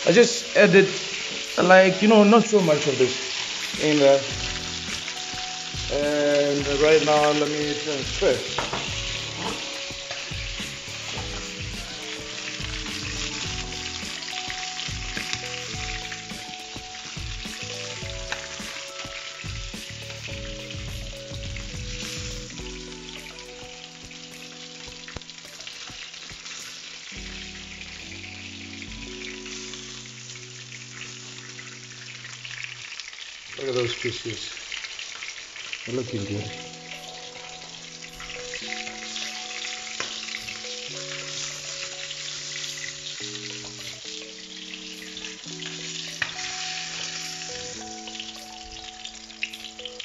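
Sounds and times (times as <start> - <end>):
soft background music: 0.0 - 34.2, 35.9 - 50.0
chicken sizzling in oil: 0.0 - 50.0.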